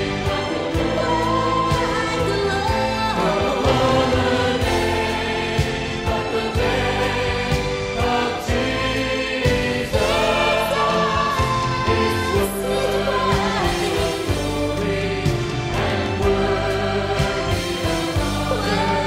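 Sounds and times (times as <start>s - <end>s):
band with steady beat: 0.0s - 19.0s
choir singing: 0.0s - 19.0s.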